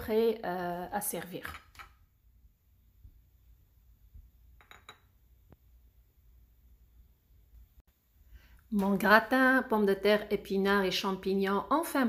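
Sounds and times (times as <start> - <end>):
utensil clinking ceramic dish: 4.6 - 5.1.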